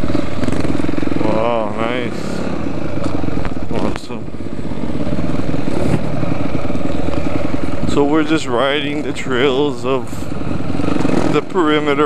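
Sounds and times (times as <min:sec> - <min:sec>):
dirt bike engine under throttle: 0:00.0 - 0:12.0.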